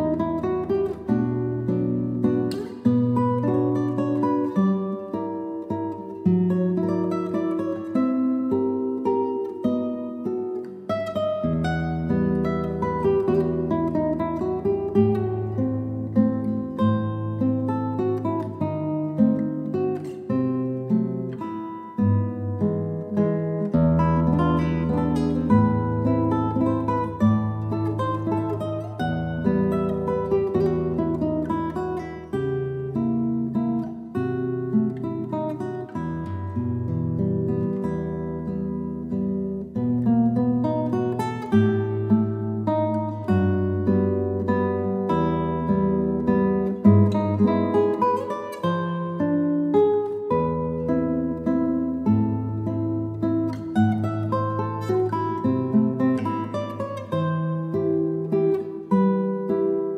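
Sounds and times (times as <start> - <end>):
classical guitar playing: 0.0 - 59.9.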